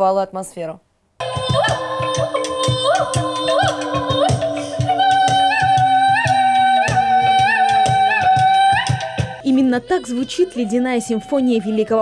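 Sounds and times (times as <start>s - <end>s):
fast percussion beat: 1.2s - 10.0s.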